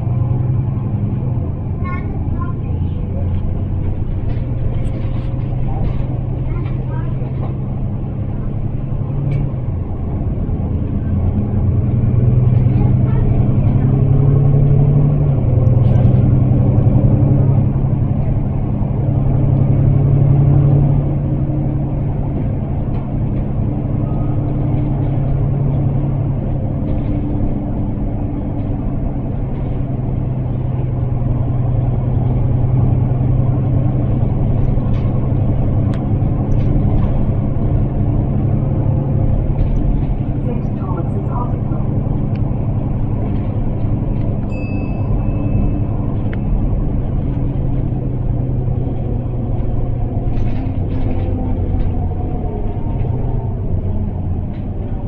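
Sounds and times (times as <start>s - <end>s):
bus diesel engine accelerating: 0.0s - 55.0s
road rumble: 0.0s - 55.0s.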